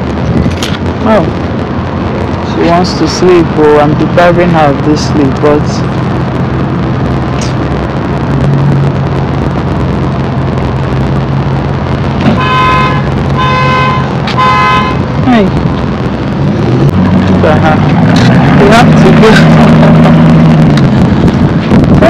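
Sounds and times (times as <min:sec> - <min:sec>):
steady low rumble: 0:00.0 - 0:22.0
vehicle beeps: 0:12.4 - 0:15.0.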